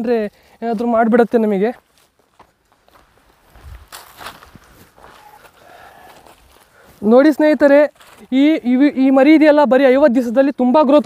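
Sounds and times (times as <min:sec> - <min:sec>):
footsteps on dry ground: 0:00.0 - 0:10.0.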